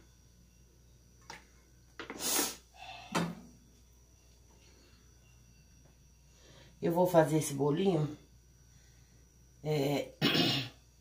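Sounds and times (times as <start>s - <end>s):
short hiss: 2.0s - 2.7s.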